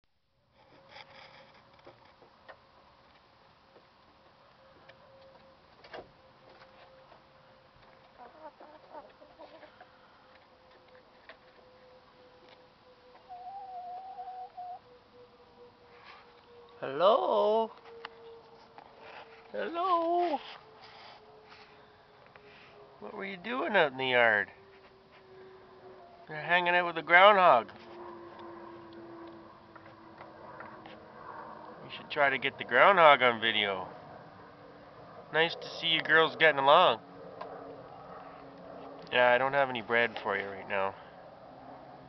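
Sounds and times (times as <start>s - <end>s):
hens clucking softly: 8.0s - 10.0s, 13.2s - 14.8s
hen drawn-out call: 13.1s - 14.8s.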